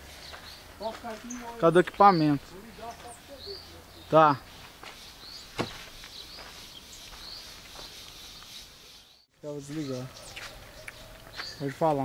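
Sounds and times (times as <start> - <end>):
footsteps on grass: 0.0 - 12.0
faint bird chirps: 0.2 - 12.0
sharp knock: 5.6 - 5.8.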